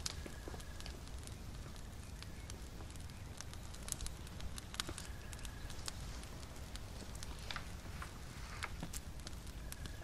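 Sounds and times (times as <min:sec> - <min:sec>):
wood fire crackling: 0:00.0 - 0:10.0.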